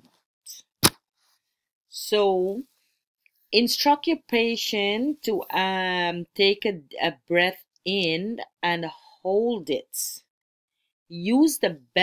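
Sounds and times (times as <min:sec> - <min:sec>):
sharp click: 0:00.8 - 0:01.0.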